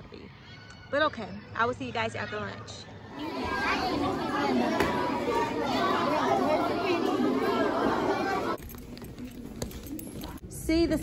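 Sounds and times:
children chattering: 2.4s - 8.6s.

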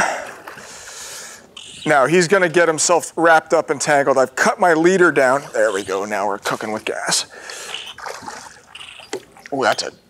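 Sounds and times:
churning water and spray: 5.2s - 9.5s
fish splash: 7.6s - 9.6s.

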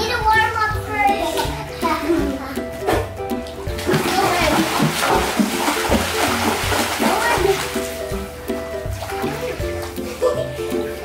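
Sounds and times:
background music: 0.0s - 11.0s
water splashing in pool: 3.6s - 11.0s.

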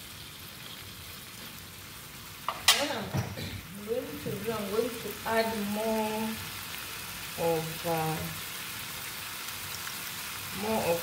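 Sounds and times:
chips sizzling in a frying pan: 0.0s - 11.0s.

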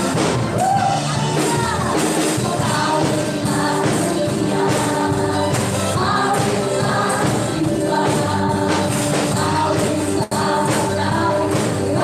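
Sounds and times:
electric guitars: 0.0s - 12.0s
group singing together: 0.0s - 12.0s
keyboard: 0.0s - 12.0s
worship band playing: 0.0s - 12.0s.

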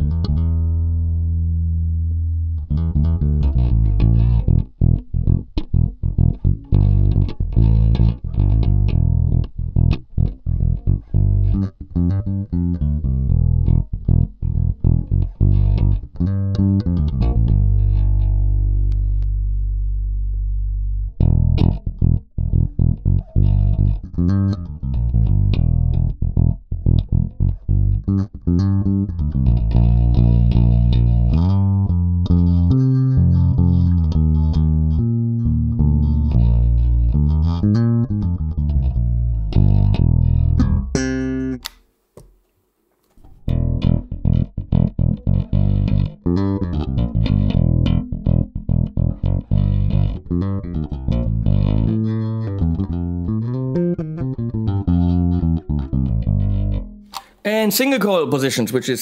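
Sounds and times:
electric bass plucked notes: 0.0s - 41.8s, 43.3s - 57.7s.

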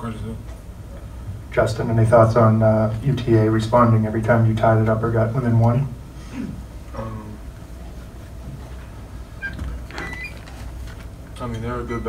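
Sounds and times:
steady low hum: 0.0s - 12.0s
faint high squeaks: 9.4s - 10.5s.

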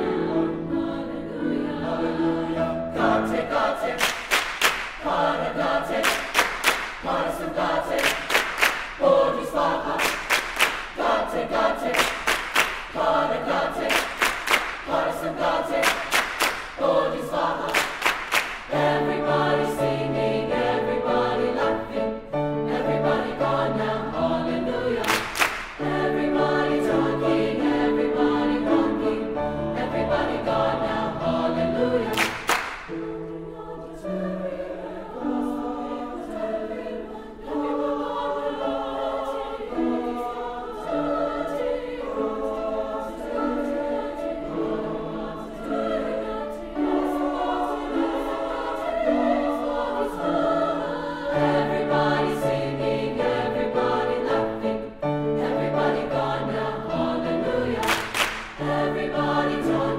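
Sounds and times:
choir singing in parts: 0.0s - 59.9s.

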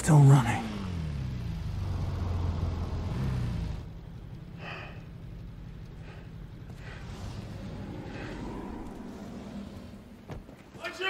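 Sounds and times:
deep low rumble: 1.4s - 10.7s.

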